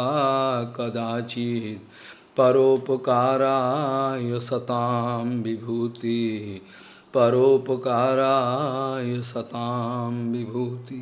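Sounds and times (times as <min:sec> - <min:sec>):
man chanting melodically: 0:00.0 - 0:11.0.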